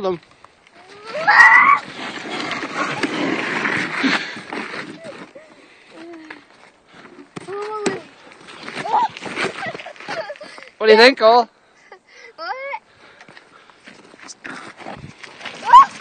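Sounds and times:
cart wheels rolling on road: 0:00.8 - 0:05.4
high-pitched shout: 0:01.1 - 0:01.8, 0:15.6 - 0:16.0.

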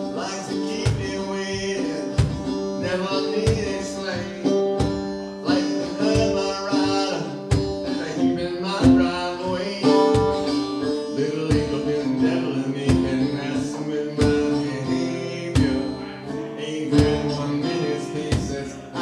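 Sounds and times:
man singing: 0:00.0 - 0:19.0
strummed acoustic guitar: 0:00.0 - 0:19.0.

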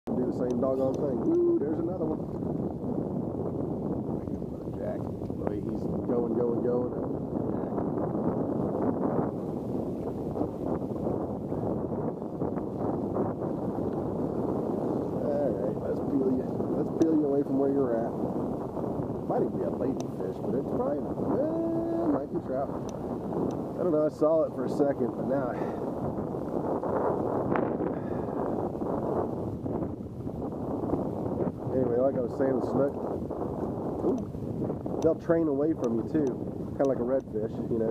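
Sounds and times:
wind buffeting microphone: 0:00.0 - 0:37.9.

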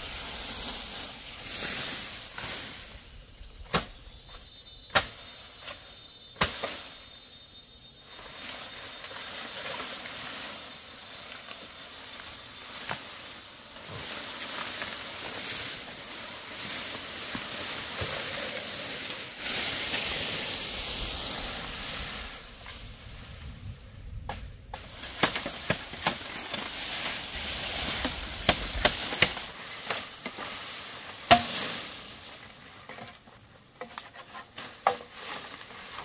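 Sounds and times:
leaves rustling and swishing: 0:00.0 - 0:07.3, 0:08.0 - 0:36.0
machete chopping branches: 0:03.6 - 0:04.0, 0:04.9 - 0:05.8, 0:06.4 - 0:06.8, 0:24.3 - 0:27.2, 0:27.8 - 0:30.5, 0:31.1 - 0:31.9.

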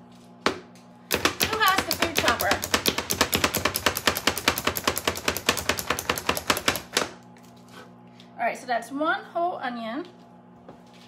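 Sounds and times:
food chopper blades clacking: 0:01.1 - 0:07.0.

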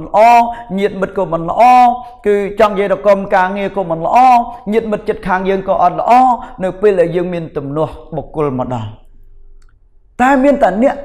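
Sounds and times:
man speaking: 0:00.0 - 0:09.1, 0:10.2 - 0:11.0.

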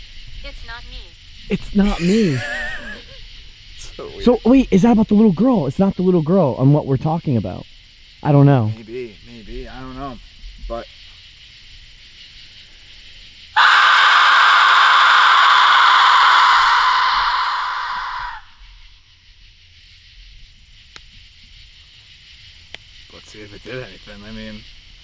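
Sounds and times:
faint insect chirr: 0:00.0 - 0:25.0.

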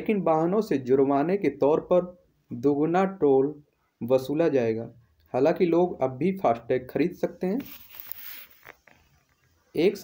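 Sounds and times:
man narrating: 0:09.8 - 0:10.0.

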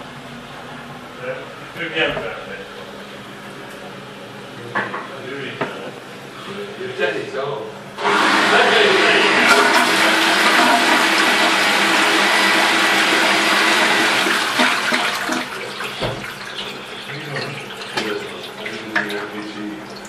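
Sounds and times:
toilet flushing: 0:08.0 - 0:20.0.

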